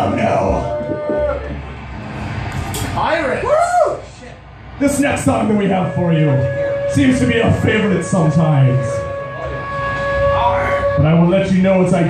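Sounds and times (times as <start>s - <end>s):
steady low hum: 0.0s - 12.0s
held musical note: 4.8s - 12.0s
voice-like gliding call: 5.3s - 12.0s.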